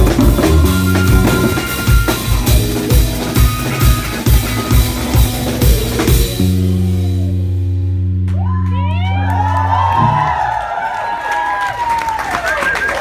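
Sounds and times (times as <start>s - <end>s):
live band chord ringing out: 0.0s - 8.2s
audience cheering and clapping: 8.2s - 13.0s.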